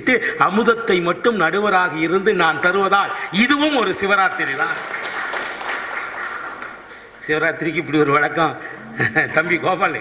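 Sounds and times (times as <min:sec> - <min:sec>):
audience applauding: 0:03.0 - 0:07.2.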